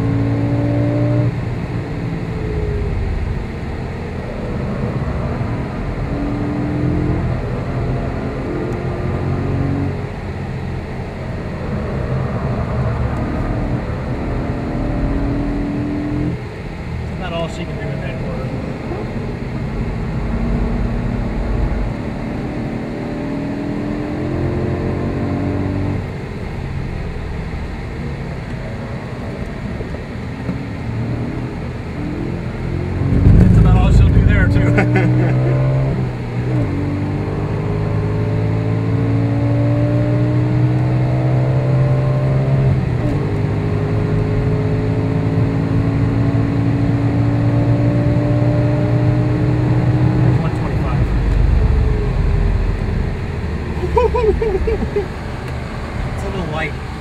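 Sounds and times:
car engine accelerating: 0:00.0 - 0:57.0
loud rough rumble: 0:01.4 - 0:08.5, 0:16.3 - 0:22.7, 0:26.0 - 0:36.8, 0:49.3 - 0:57.0
tyre and road noise: 0:22.6 - 0:41.6, 0:47.1 - 0:57.0.

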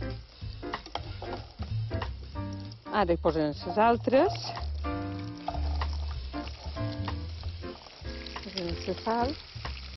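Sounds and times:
background music: 0:00.0 - 0:09.9
oil sizzling in frying pan: 0:00.0 - 0:09.9.

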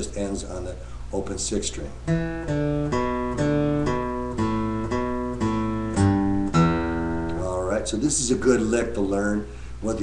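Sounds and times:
acoustic guitar single-note riff: 0:02.0 - 0:07.8.

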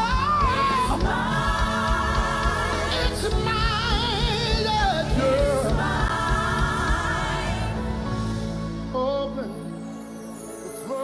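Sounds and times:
live band with low beat: 0:00.0 - 0:08.9
gospel choir singing: 0:00.0 - 0:09.0.

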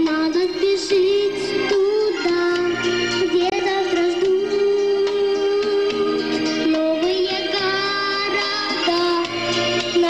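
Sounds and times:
backing track: 0:00.0 - 0:10.0
young woman singing: 0:00.0 - 0:10.0.

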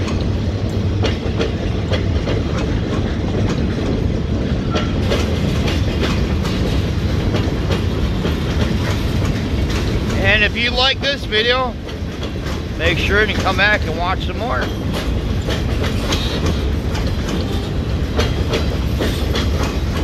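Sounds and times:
freight train rumbling past: 0:00.0 - 0:20.0
train wheels clicking over rail joints: 0:00.0 - 0:20.0.

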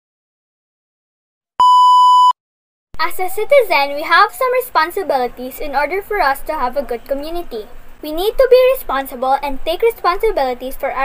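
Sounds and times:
high electronic beep: 0:01.6 - 0:02.4.

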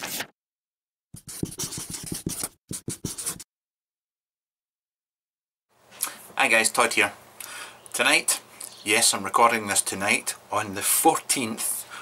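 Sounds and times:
pen scratching on paper: 0:01.2 - 0:03.5.

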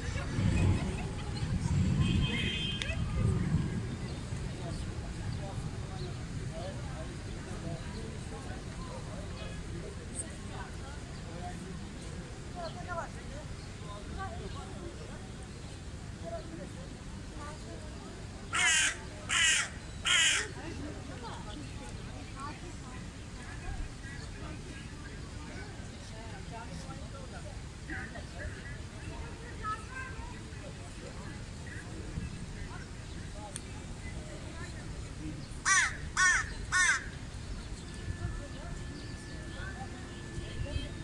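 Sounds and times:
crow cawing: 0:18.5 - 0:20.5, 0:35.6 - 0:37.2.

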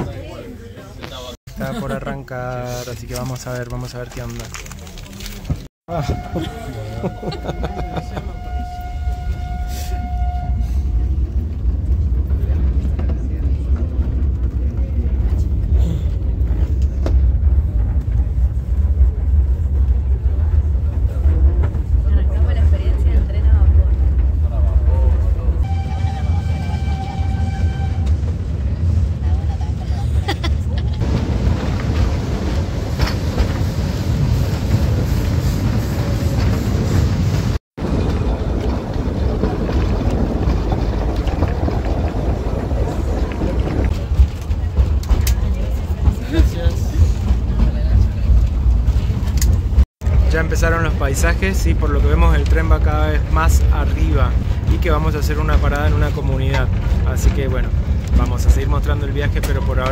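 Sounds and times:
rush of travel: 0:04.5 - 0:59.9
steam train rumble: 0:05.9 - 0:59.9
steam whistle: 0:06.0 - 0:10.9, 0:25.6 - 0:28.1.

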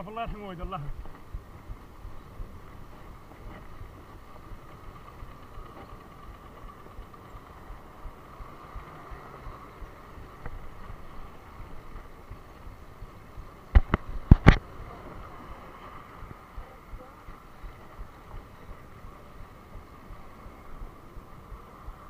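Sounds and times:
wind and road noise: 0:00.0 - 0:22.0.

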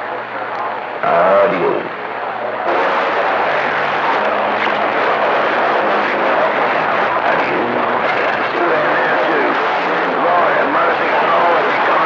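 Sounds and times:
faint garbled radio voices: 0:00.0 - 0:12.0
radio static and hiss: 0:00.0 - 0:12.0.

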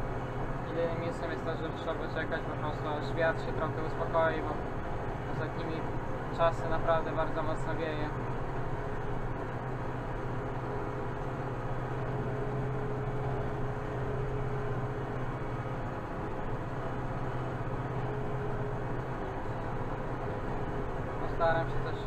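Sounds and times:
tractor diesel engine droning: 0:00.0 - 0:22.0.

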